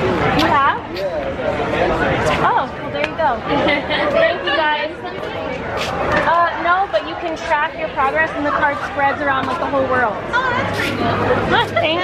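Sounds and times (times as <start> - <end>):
people chatting: 0.0 - 12.0.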